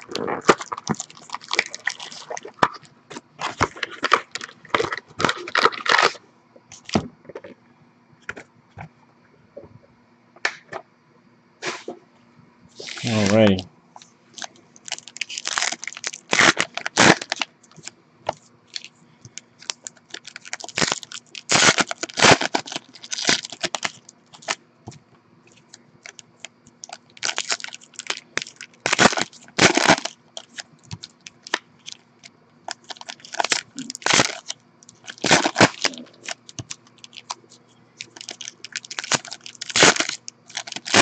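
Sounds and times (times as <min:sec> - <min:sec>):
foil wrappers crinkling and tearing: 0:00.0 - 0:06.2, 0:14.3 - 0:17.9, 0:18.7 - 0:24.6, 0:25.5 - 0:41.0.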